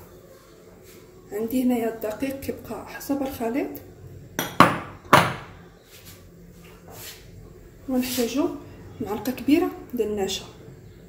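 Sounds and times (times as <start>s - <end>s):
glass bowl knocking on stone: 4.4s - 5.5s.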